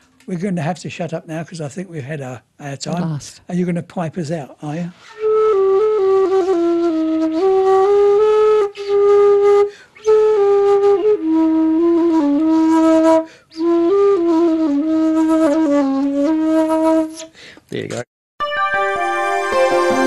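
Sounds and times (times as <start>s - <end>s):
solo flute melody: 4.9s - 17.3s, 18.4s - 20.0s
breaths between phrases: 17.3s - 17.7s.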